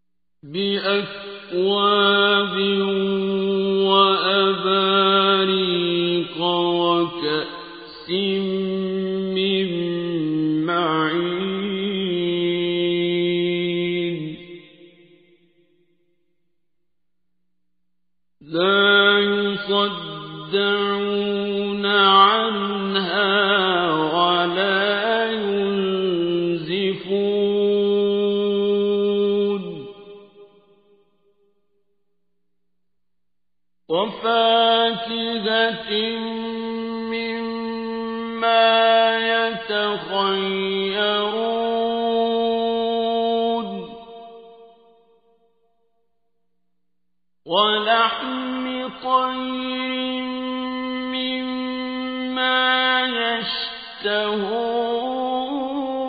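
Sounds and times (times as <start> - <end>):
man reciting melodically: 0.4 - 14.6, 18.4 - 30.0, 33.9 - 44.2, 47.5 - 56.0
man chanting: 0.4 - 15.0, 18.4 - 30.3, 33.9 - 44.7, 47.5 - 56.0.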